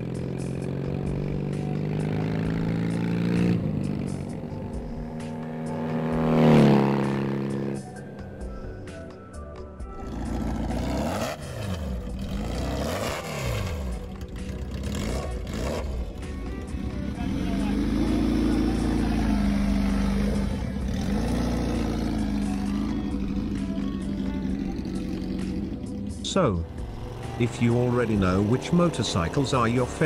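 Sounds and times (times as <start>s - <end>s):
motorcycle engine revving: 0.0s - 9.1s, 9.8s - 30.0s.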